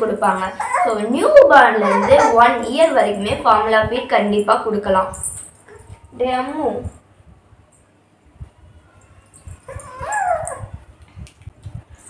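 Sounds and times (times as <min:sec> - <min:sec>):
infant whimpering cry: 0:01.8 - 0:02.6.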